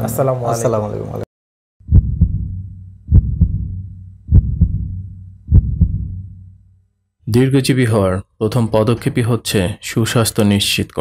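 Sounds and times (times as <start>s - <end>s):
heartbeat double thumps: 1.8s - 6.7s
low hum: 1.8s - 7.0s.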